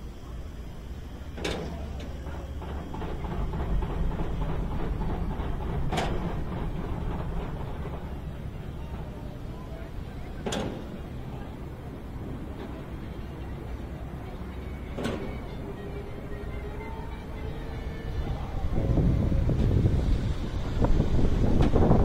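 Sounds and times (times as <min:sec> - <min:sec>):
steady low rumble: 0:00.0 - 0:22.0
wind rushing over microphone: 0:18.1 - 0:22.0.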